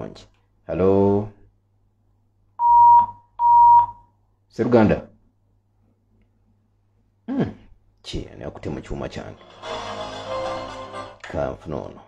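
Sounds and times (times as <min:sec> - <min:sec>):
telephone line beeps: 0:02.6 - 0:04.0.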